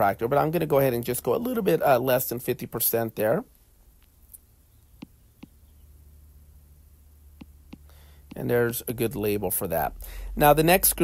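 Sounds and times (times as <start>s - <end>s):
low steady hum: 0.0s - 11.0s
stylus tapping on tablet screen: 7.4s - 8.4s.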